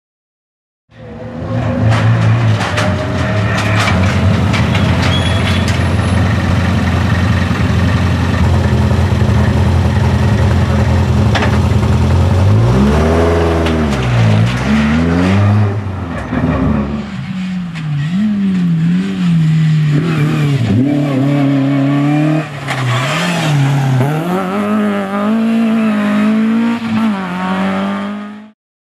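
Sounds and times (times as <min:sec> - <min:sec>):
car engine idling and revving: 0:01.0 - 0:28.5.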